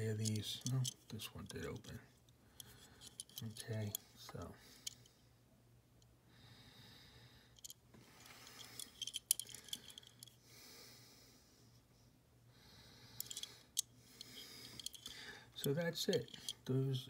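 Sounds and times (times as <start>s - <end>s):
soft breathing: 2.4s - 5.5s, 6.2s - 16.6s.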